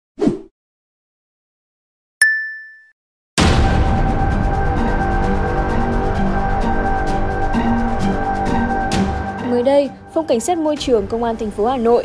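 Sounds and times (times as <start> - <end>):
notification bell ding: 2.2 - 2.9
background music: 3.4 - 12.0.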